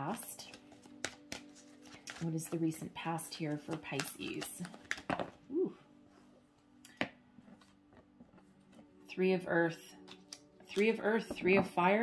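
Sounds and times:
cards drawn and laid down: 0.1 - 5.4, 10.0 - 11.8.

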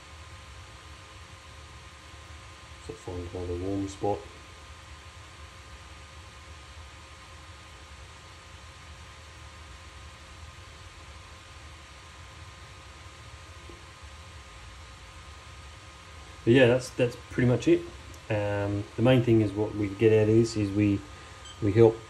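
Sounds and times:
cooling fans whining: 0.0 - 22.0
low hum: 0.0 - 22.0.

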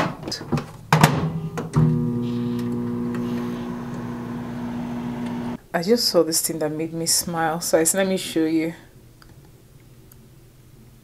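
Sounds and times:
microwave humming: 1.6 - 5.6.

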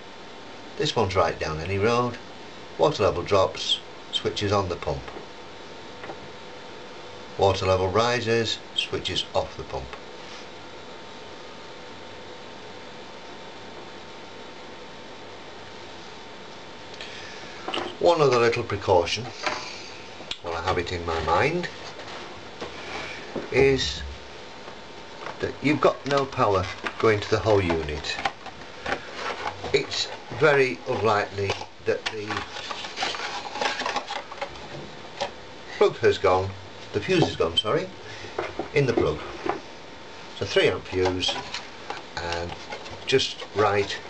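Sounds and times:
faint steady hum: 0.0 - 44.0
steady hiss: 0.0 - 44.0.

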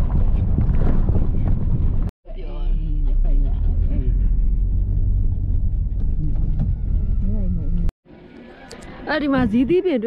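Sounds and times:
steady low rumble: 0.0 - 7.9.

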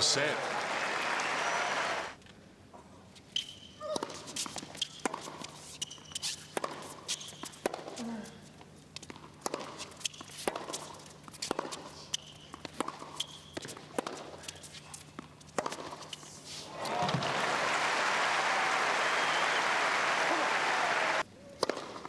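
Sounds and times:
shoes squeaking on court: 3.2 - 8.3, 9.0 - 16.6
tennis ball bounces: 6.5 - 7.9, 9.0 - 14.4, 21.6 - 22.0.

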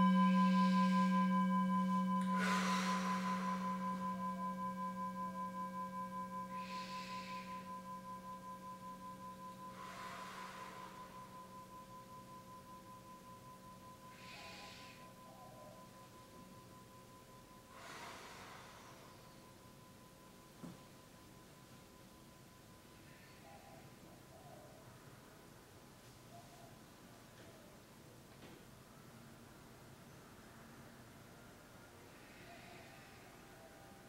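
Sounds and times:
meditation bowl ringing: 0.0 - 23.5
soft breaths: 1.9 - 12.6, 13.9 - 16.5, 17.6 - 19.8, 31.4 - 34.0.

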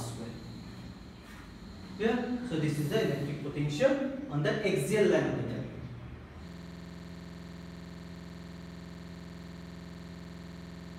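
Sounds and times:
electrical buzz: 0.0 - 4.3, 6.2 - 10.9.

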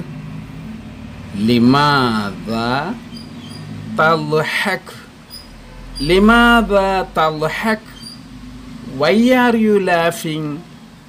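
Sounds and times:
steady low hum: 0.0 - 11.0
man speaking: 1.3 - 3.1, 3.8 - 5.2, 6.0 - 8.0, 8.8 - 10.7.

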